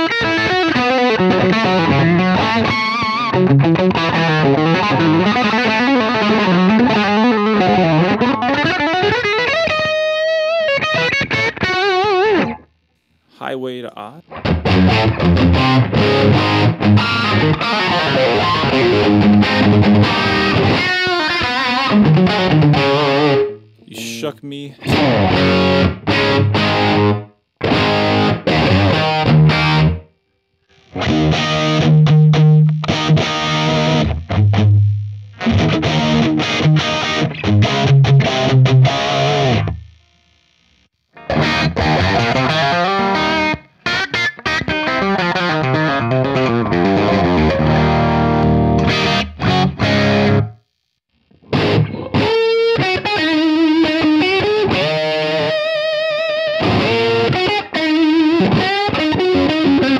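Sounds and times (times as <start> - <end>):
distorted electric guitar: 0.0 - 13.4, 14.1 - 59.9.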